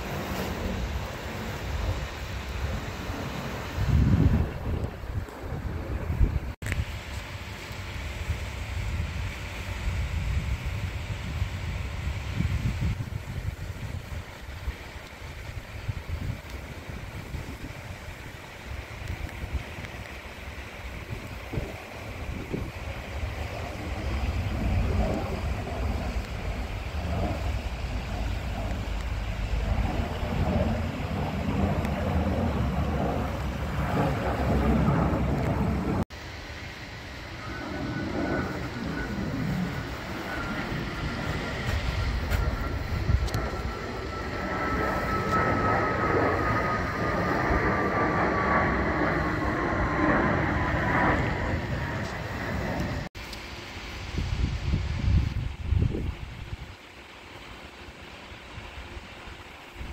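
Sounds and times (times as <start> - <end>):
wind buffeting microphone: 0.0 - 36.2, 37.3 - 53.2, 54.0 - 56.8
jet airliner passing overhead: 0.0 - 59.9.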